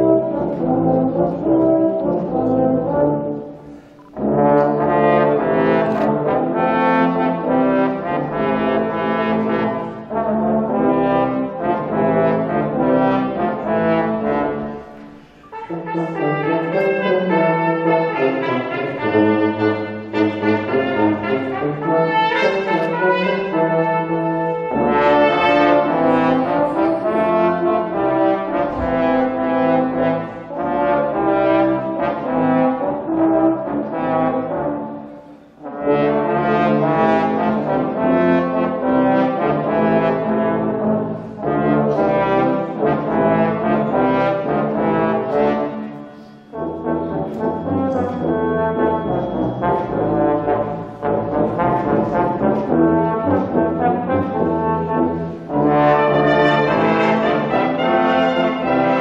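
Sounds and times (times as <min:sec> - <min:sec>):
brass ensemble playing a carol: 0:00.0 - 0:59.0.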